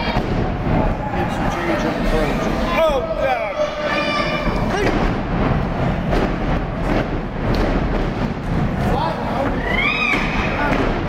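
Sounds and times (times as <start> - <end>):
loud rumbling din: 3.0 - 11.0.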